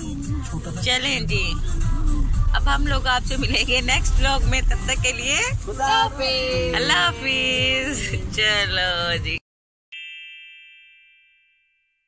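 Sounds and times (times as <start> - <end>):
bell-like ding: 9.9 - 12.0.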